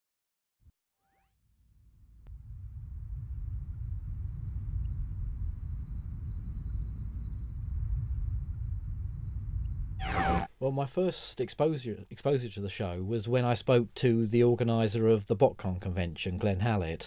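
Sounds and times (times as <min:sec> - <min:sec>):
low rumbling drone: 0:02.2 - 0:10.5.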